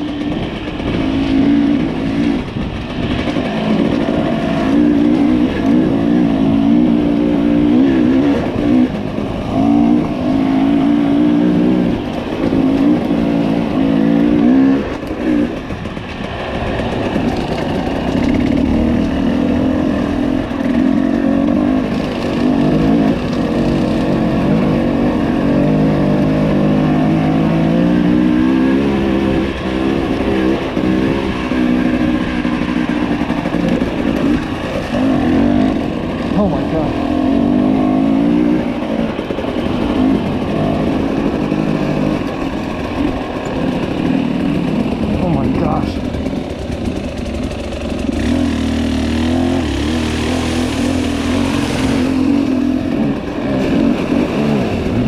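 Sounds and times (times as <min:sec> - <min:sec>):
motorcycle engine revving: 0:00.0 - 0:55.0.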